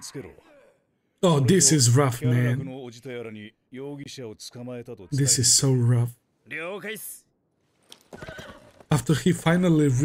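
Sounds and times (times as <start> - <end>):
man speaking: 1.2 - 7.3, 8.9 - 10.0.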